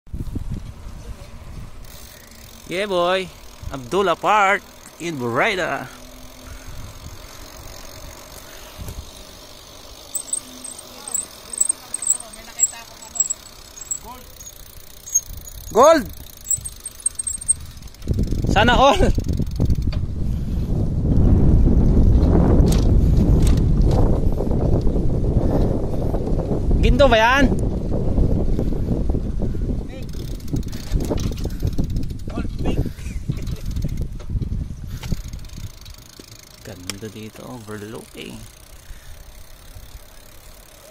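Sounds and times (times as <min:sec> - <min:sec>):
wind on microphone: 0:00.1 - 0:02.0, 0:06.4 - 0:09.2, 0:15.2 - 0:36.0
bicycle rattling on rough asphalt: 0:00.1 - 0:40.9.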